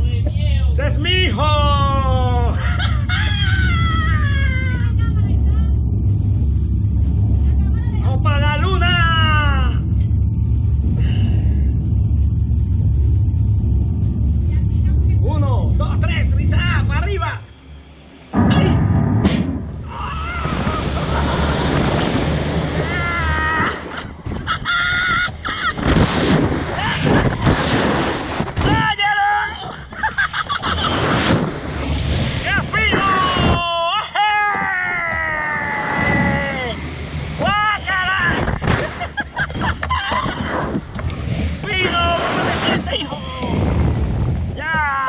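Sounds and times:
man yelling: 0.8 - 2.6, 8.4 - 9.8, 28.6 - 29.8, 32.5 - 36.8, 37.4 - 38.4
wind rumble on microphone: 18.4 - 29.0, 29.8 - 33.7, 34.6 - 37.5, 38.1 - 44.8
wind buffeting microphone: 19.5 - 23.1, 42.4 - 44.6.

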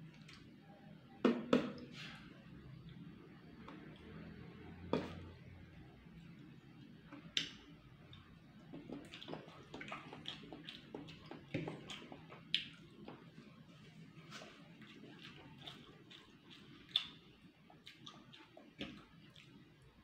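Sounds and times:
person chewing and lip smacking: 7.2 - 13.3, 14.4 - 19.6.

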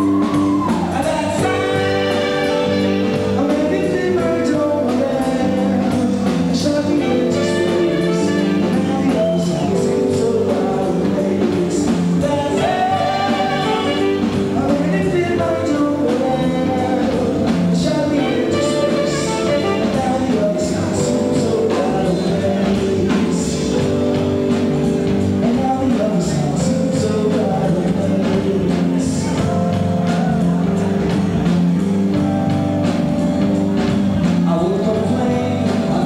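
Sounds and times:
live band playing: 0.0 - 36.0.

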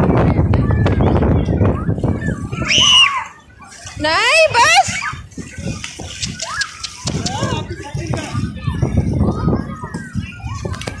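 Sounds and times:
children calling and chattering: 0.0 - 11.0.

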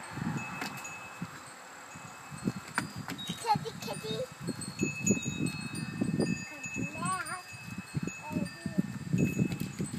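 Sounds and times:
wind chime ringing: 0.0 - 9.9
low bumps and rustling: 2.1 - 6.3.

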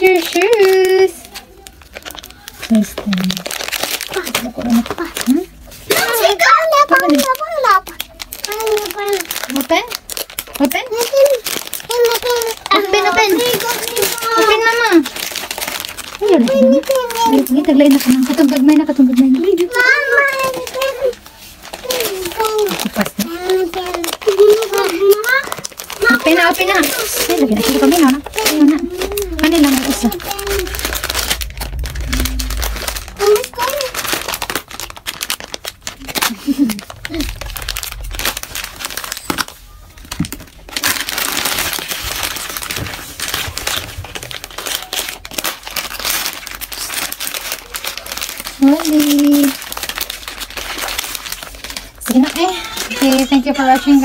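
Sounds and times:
plastic wrapper crinkling: 0.0 - 54.0
toddler vocal sounds: 21.8 - 34.0
child's vocal sound: 28.3 - 34.1.

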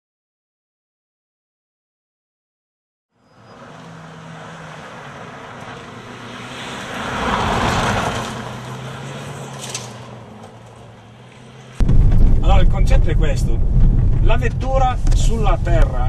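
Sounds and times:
car engine passing: 3.2 - 16.0
car interior engine noise: 3.4 - 16.0.

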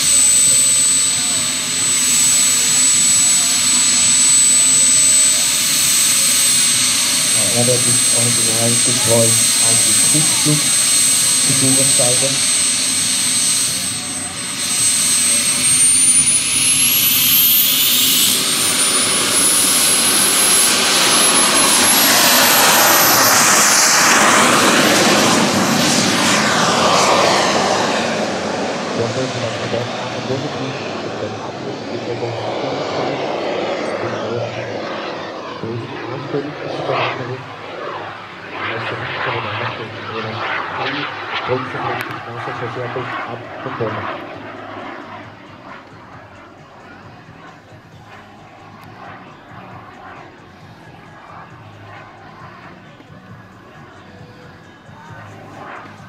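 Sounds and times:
jet rush passing: 0.0 - 45.9
model jet turbine whine: 0.0 - 56.0.

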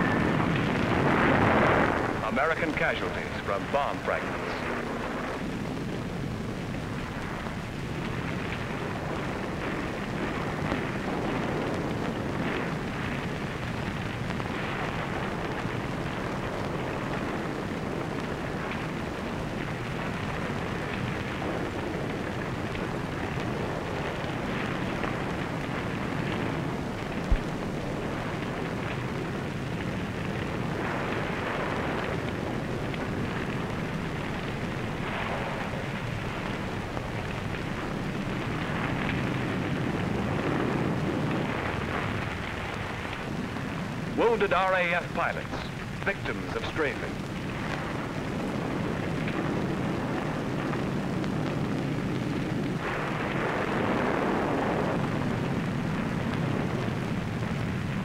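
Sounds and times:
steady crackling noise: 0.0 - 58.0.

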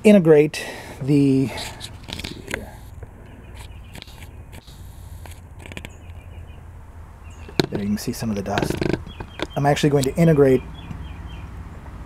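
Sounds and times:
low steady hum: 0.0 - 10.2
light clicks and rustles: 1.6 - 6.2.

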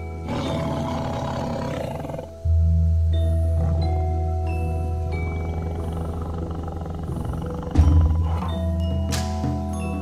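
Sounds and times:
music with steady held tones: 0.0 - 10.0
tiger roaring: 0.2 - 2.4, 3.5 - 4.2, 5.2 - 8.8.

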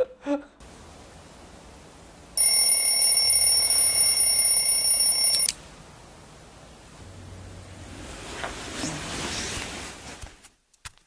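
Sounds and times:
alarm clock ringing: 2.4 - 5.5.

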